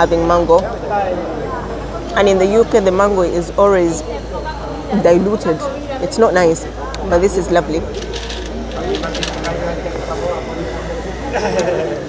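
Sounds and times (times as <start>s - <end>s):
indistinct background voices: 0.0s - 12.0s
woman laughing: 4.9s - 5.7s.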